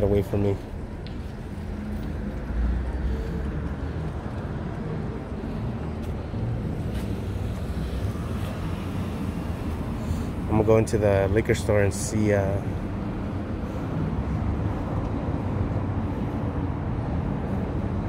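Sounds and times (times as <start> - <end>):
vehicle engine and tyre rumble: 0.0 - 18.0.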